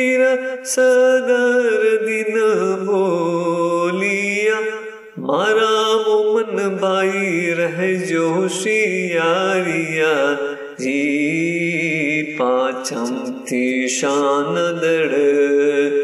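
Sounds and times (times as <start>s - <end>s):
person chanting a hymn: 0.0s - 16.0s.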